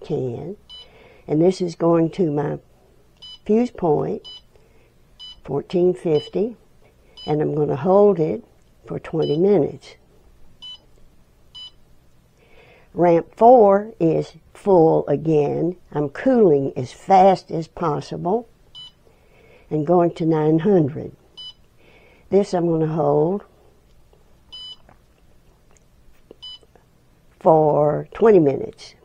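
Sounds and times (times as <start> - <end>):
keypad beeps: 9.2 - 9.4, 24.5 - 24.8, 26.4 - 26.6.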